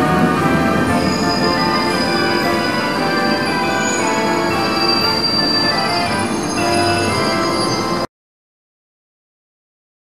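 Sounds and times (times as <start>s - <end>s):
train wheels squealing: 0.8s - 8.1s.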